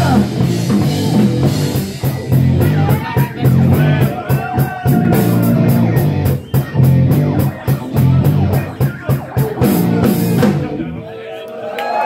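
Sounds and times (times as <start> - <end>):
drum kit: 0.0 - 11.0
electric guitar chords: 4.8 - 11.0.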